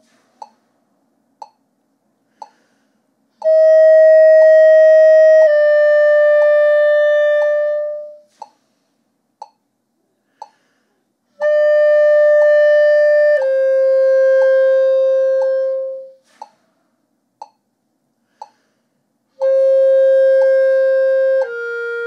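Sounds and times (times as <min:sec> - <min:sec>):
metronome ticking: 0:01.4 - 0:01.6, 0:02.4 - 0:02.6, 0:09.4 - 0:09.6, 0:10.4 - 0:10.6, 0:15.4 - 0:15.6, 0:17.4 - 0:17.6, 0:18.4 - 0:18.6
clarinet playing slurred notes: 0:03.4 - 0:08.3, 0:11.4 - 0:16.2, 0:19.4 - 0:22.0.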